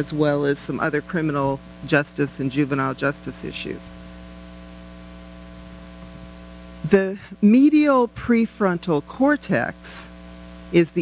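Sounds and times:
person speaking: 0.0 - 4.0, 6.8 - 10.1, 10.8 - 11.0
electrical mains hum: 0.0 - 11.0.

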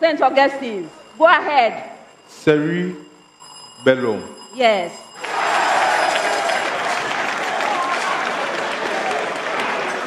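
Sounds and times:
audience applauding: 5.2 - 10.0
voices in crowd: 5.2 - 10.0.

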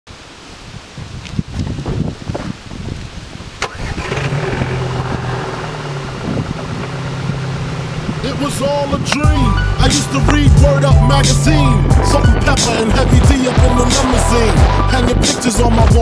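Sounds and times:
wind rumbling on microphone: 0.1 - 16.0
engine humming: 3.6 - 16.0.

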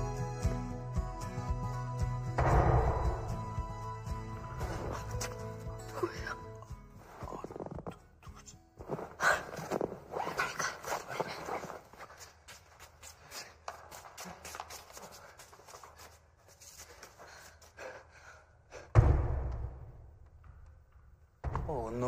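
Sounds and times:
loud thud: 2.4 - 3.4, 19.0 - 20.1
breathy noises: 4.6 - 12.4
hurried footsteps: 8.8 - 21.7.

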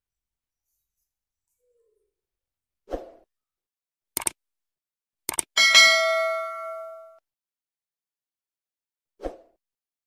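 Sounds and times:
quick double click: 4.2 - 4.4, 5.3 - 5.5
bright bell ding: 5.6 - 7.2.

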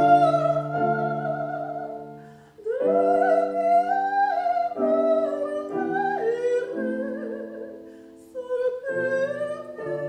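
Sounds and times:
piano accompaniment: 0.0 - 10.0
woman singing classical: 0.0 - 10.0.

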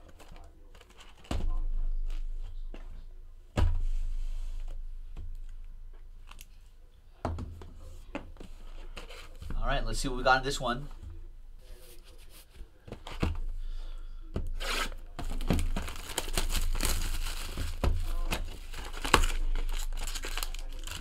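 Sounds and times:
plastic shrink-wrap tearing and crinkling: 14.6 - 21.0.

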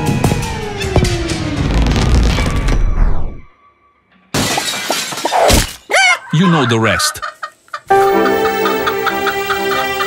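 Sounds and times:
glass shattering: 4.3 - 5.9.

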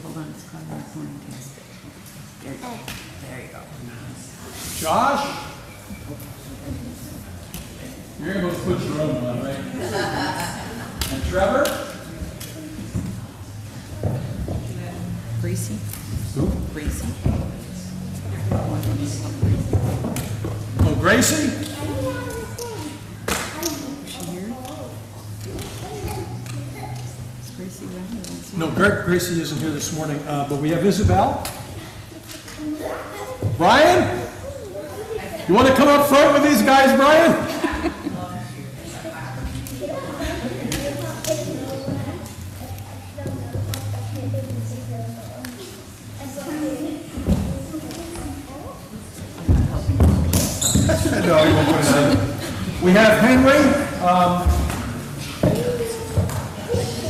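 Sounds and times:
children and adults talking: 0.0 - 57.0.

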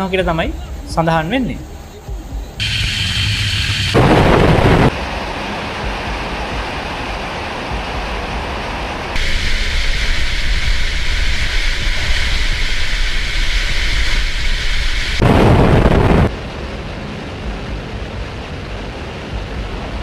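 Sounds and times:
deep aircraft rumble: 1.6 - 20.0
rush of air: 2.6 - 16.4.

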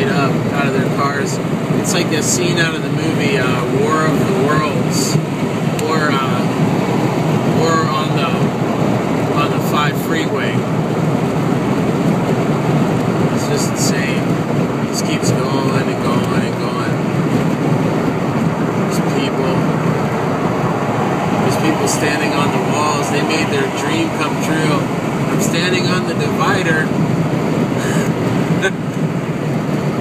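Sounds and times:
car road and wind noise: 0.0 - 30.0.

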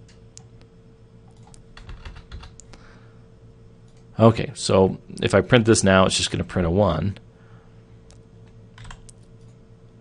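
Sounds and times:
faint steady hum: 0.0 - 10.0
computer keyboard typing: 1.3 - 2.7, 8.8 - 9.6.

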